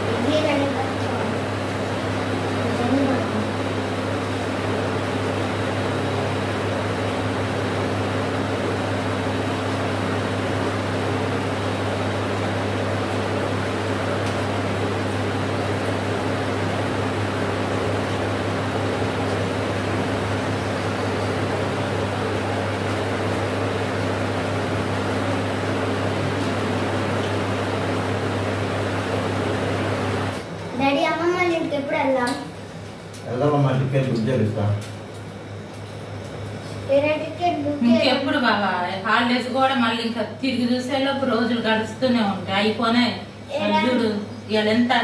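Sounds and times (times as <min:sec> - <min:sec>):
electric motor hum: 0:00.0 - 0:31.8.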